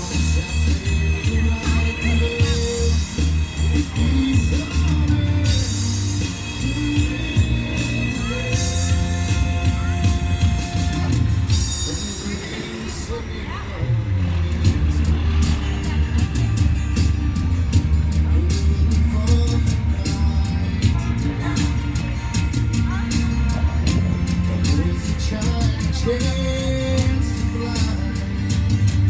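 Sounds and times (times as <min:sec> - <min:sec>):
electronic drum beat: 0:00.0 - 0:12.8, 0:14.2 - 0:29.0
acoustic guitar: 0:00.0 - 0:29.0
man singing: 0:00.0 - 0:29.0.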